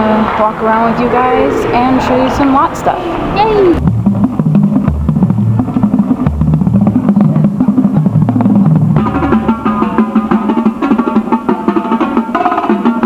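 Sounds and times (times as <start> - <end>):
higher-pitched drums: 3.4 - 13.0
rapid drum strokes: 3.8 - 13.0
tuned bass drums: 3.8 - 13.0.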